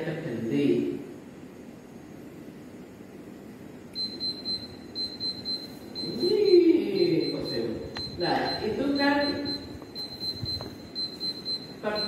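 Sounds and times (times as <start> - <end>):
room hiss: 0.0 - 12.0
high-pitched electronic beeps: 4.0 - 12.0
person speaking: 6.0 - 9.8, 11.8 - 12.0.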